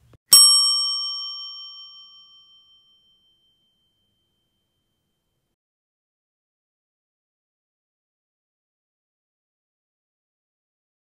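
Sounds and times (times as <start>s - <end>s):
bright bell ding: 0.3s - 5.3s.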